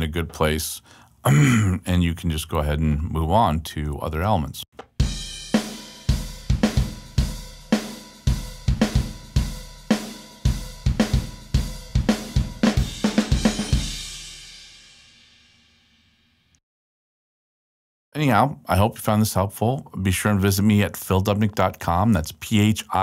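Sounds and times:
drum kit beat: 0:04.8 - 0:15.0.

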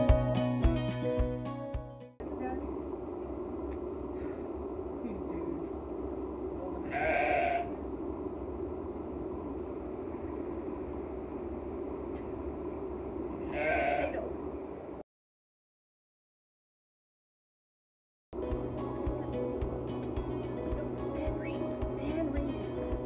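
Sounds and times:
steady background noise: 0:02.2 - 0:15.0
sheep bleating: 0:06.8 - 0:07.7, 0:13.5 - 0:14.3.

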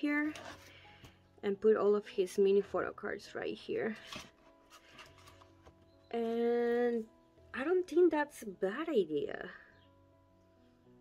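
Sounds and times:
faint background music: 0:00.0 - 0:11.0
plastic sleeves rustling: 0:03.9 - 0:06.4.

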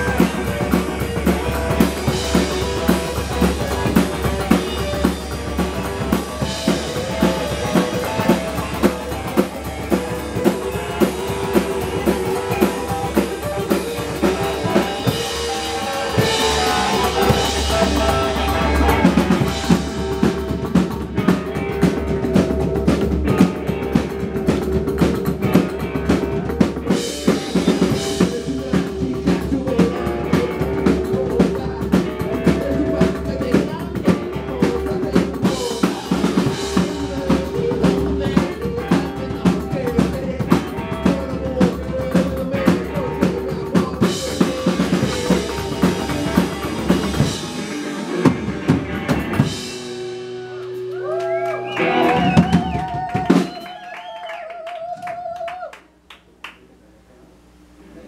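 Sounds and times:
upright double bass: 0:00.0 - 0:22.7
drum kit beat: 0:00.0 - 0:54.2
electric guitar: 0:00.0 - 0:55.7.

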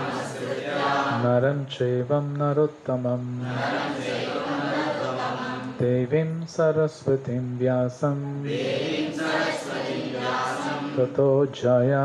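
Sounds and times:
group chanting in unison: 0:00.0 - 0:01.5, 0:03.4 - 0:06.1, 0:08.4 - 0:11.3.

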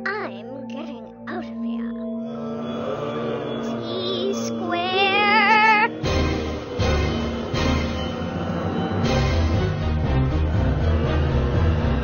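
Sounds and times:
low chanting chorus: 0:02.1 - 0:12.0.

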